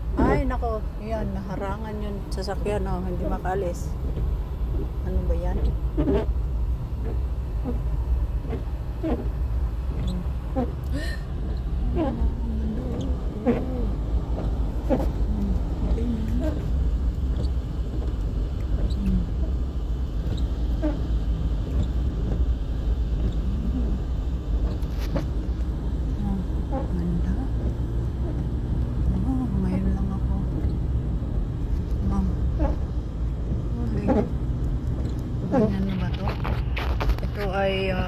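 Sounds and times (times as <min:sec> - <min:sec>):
car engine and tyres rumbling: 0:00.0 - 0:38.0.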